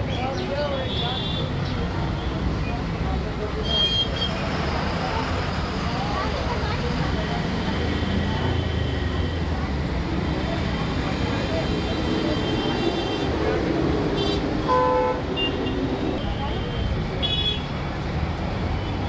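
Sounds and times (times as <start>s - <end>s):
people talking: 0.0s - 14.0s, 16.1s - 18.3s
road traffic noise: 0.0s - 19.0s
vehicle horn toots: 14.2s - 15.8s.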